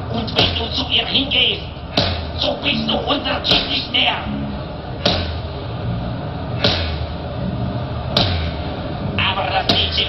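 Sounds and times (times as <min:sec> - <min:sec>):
sharp band hits: 0:01.9 - 0:02.4, 0:05.0 - 0:05.5, 0:06.6 - 0:07.1, 0:08.1 - 0:08.7
low held bass notes: 0:02.3 - 0:09.4.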